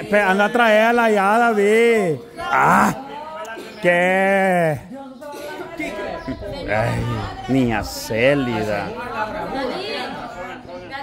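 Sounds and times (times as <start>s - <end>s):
people talking in overlapping chatter: 0.0s - 11.0s.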